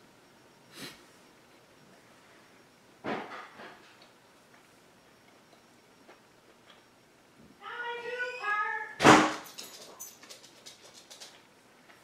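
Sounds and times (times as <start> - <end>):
high wavering cry: 7.6 - 9.0
sharp knock: 9.0 - 9.4.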